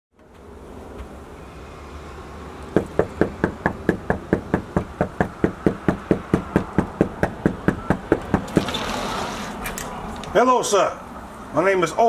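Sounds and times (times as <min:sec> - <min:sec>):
fist knocking on door: 0:02.8 - 0:08.7.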